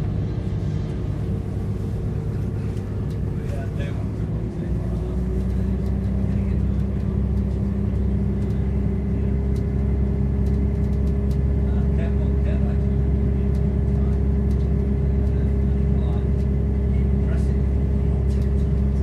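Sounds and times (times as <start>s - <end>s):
diesel engine rumble: 0.0s - 19.0s
steady hum: 0.0s - 19.0s.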